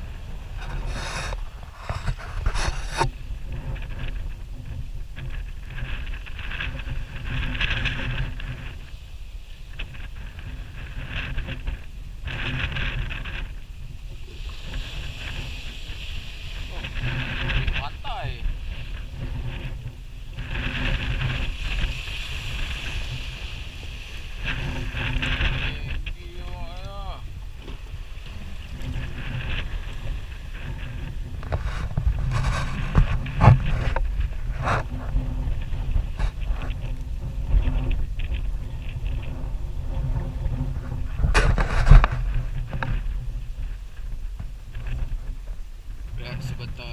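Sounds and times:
waves knocking against hull: 0.0 - 46.9
wind buffeting microphone: 0.0 - 46.9
water splashing: 5.1 - 40.1.

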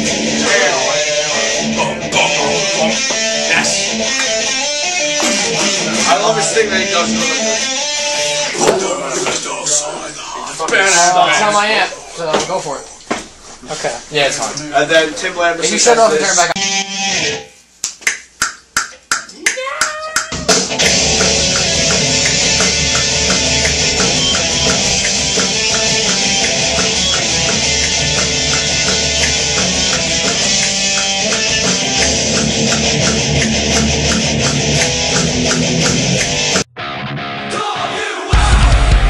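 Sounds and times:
heavy metal music: 0.0 - 10.3, 16.0 - 17.5, 20.3 - 39.0
sharp evenly spaced clicks: 17.8 - 36.7
electric guitar note sliding: 20.5 - 37.5.

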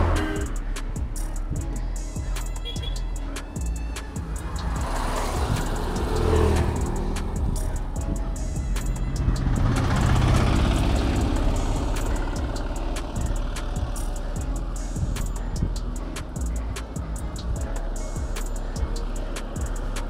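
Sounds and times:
background music: 0.0 - 20.0
vehicles passing: 0.0 - 20.0.

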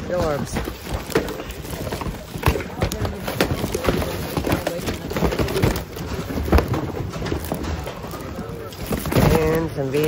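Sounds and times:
tape cases clattering in a bin: 0.0 - 10.0.

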